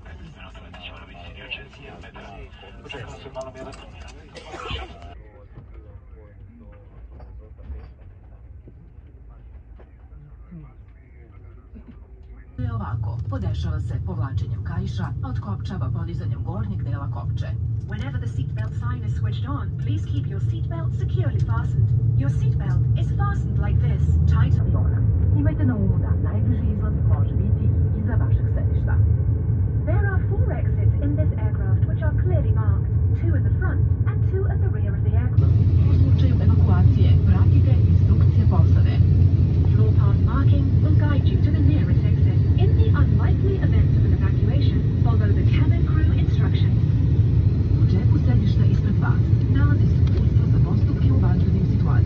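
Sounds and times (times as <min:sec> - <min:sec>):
murmuring voices: 0:00.0 - 0:15.9
airplane cabin low rumble: 0:00.0 - 0:52.0.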